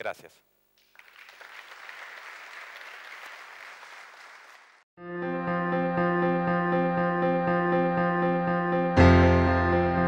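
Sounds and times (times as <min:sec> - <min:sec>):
audience applauding: 0:00.8 - 0:04.8.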